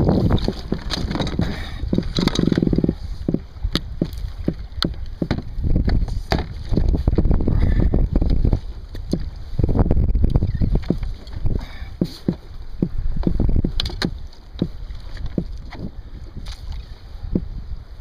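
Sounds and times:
heavy low rumble: 0.0s - 18.0s
clicks of fishing gear handled: 0.3s - 7.0s, 13.2s - 16.8s.

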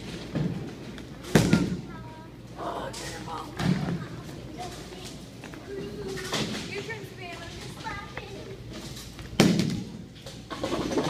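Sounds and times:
bowling equipment clacking: 8.9s - 11.0s.

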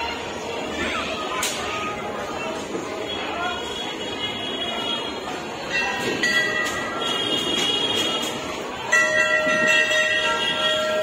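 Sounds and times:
busy background noise: 0.0s - 11.0s.

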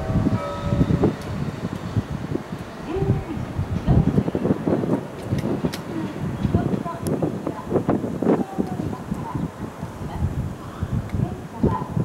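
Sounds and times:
wind gusting on microphone: 0.0s - 12.0s.

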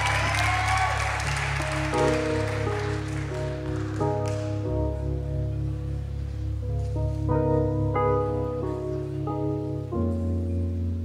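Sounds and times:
applause: 0.0s - 4.7s
keyboard chords: 0.0s - 11.0s.

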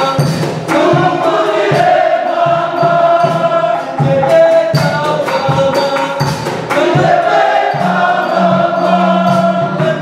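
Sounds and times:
choir singing long notes: 0.0s - 4.8s, 6.7s - 10.0s
regular drumbeat: 0.0s - 10.0s.

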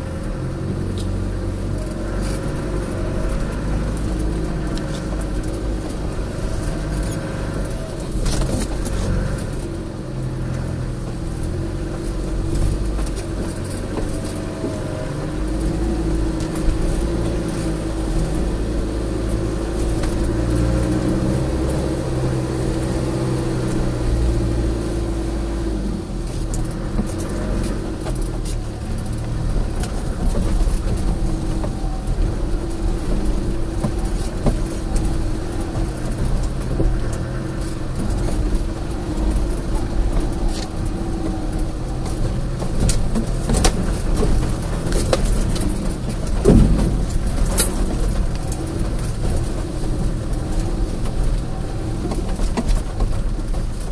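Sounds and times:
engine running at low revs: 0.0s - 53.9s.

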